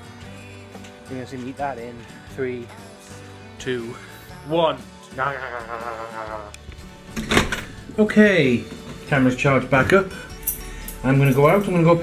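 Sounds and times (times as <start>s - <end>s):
person humming wavering note: 5.3s - 6.6s.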